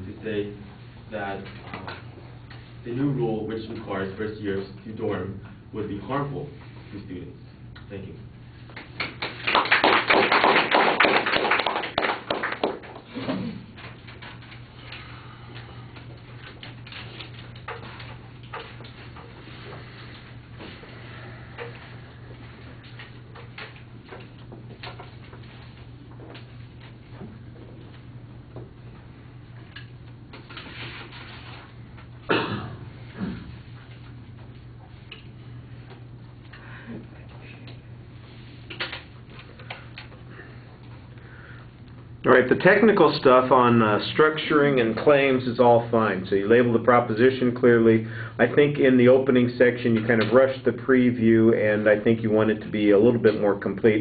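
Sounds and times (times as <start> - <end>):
steady low hum: 0.0 - 54.0
audience applauding: 9.2 - 13.0.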